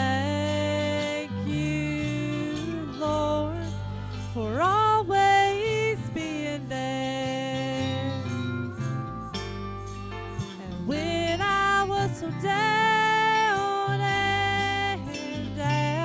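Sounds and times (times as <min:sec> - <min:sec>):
woman singing into a microphone: 0:00.0 - 0:08.5, 0:10.6 - 0:16.0
electric guitar backing: 0:00.0 - 0:16.0.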